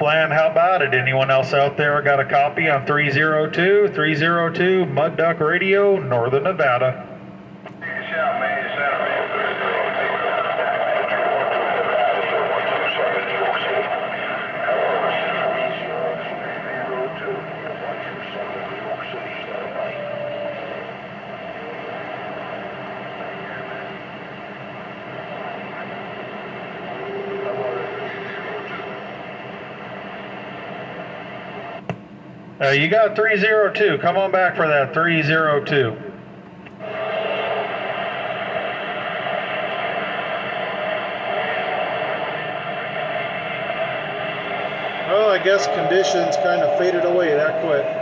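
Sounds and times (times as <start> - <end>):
garbled distant radio voices: 7.7 - 31.8, 36.8 - 48.0
radio static: 7.7 - 31.9, 36.8 - 48.0
heterodyne whistles: 45.0 - 48.0.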